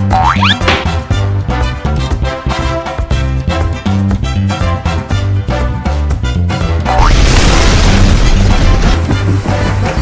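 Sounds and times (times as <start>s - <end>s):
cartoon boing glide: 0.0s - 0.7s
swing background music: 0.0s - 7.1s, 8.3s - 10.0s.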